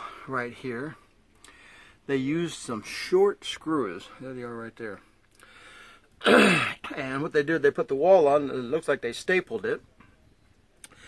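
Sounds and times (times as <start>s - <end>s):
man coughing: 6.2s - 6.9s.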